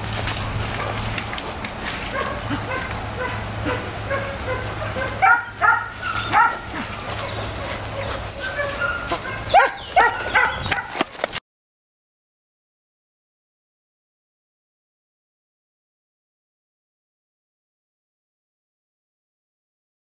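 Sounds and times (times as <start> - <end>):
dogs barking and yelping: 0.4 - 11.3.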